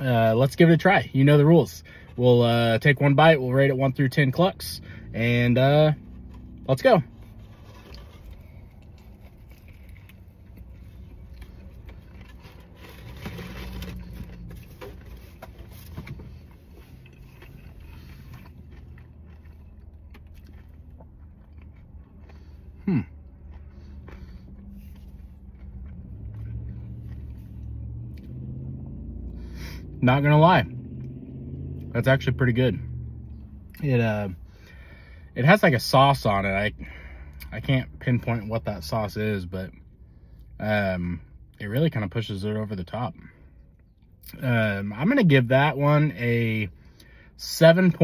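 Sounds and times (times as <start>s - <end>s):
person chewing food: 7.2s - 29.4s
person humming hmm: 22.8s - 23.2s.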